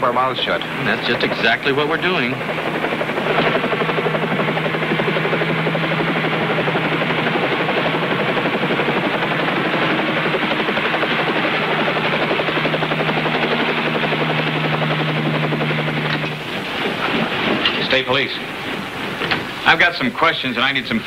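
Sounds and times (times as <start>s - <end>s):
helicopter engine hum: 0.0s - 21.0s
helicopter rotor blades chopping: 0.0s - 21.0s.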